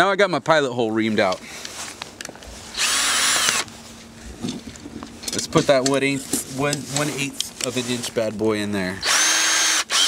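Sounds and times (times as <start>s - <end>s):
cordless drill motor whine: 2.7s - 3.7s, 9.0s - 10.0s.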